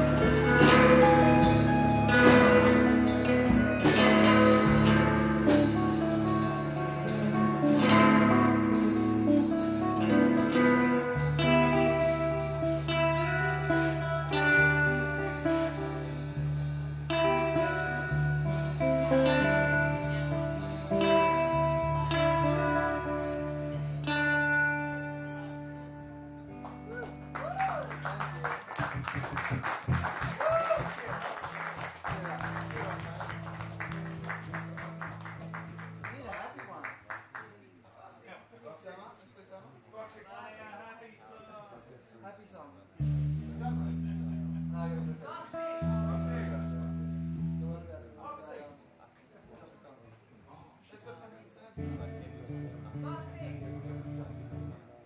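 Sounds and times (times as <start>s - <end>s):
electric guitar plucked notes: 0.0s - 30.9s, 31.8s - 36.0s, 43.0s - 47.9s, 51.8s - 54.8s.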